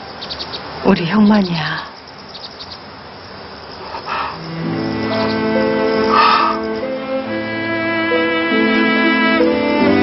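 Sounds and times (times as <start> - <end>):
high insect-like chirping: 0.0 - 9.6
sustained bowed strings: 4.4 - 10.0.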